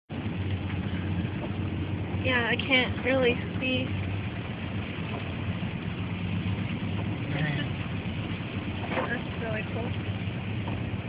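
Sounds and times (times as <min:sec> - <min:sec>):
road noise hiss: 0:00.1 - 0:11.0
vehicle engine drone: 0:00.1 - 0:11.0.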